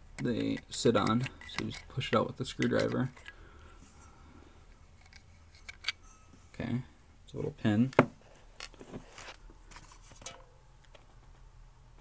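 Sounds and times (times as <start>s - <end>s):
low hum: 3.1s - 7.6s.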